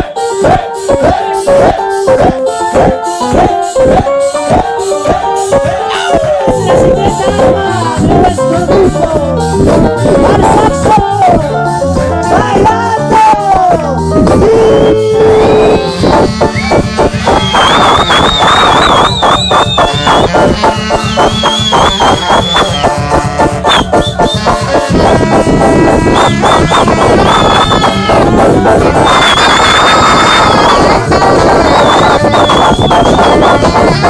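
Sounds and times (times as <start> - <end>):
electric guitar: 0.0 - 34.0
live band playing distorted music: 0.0 - 34.0
drums: 2.8 - 34.0.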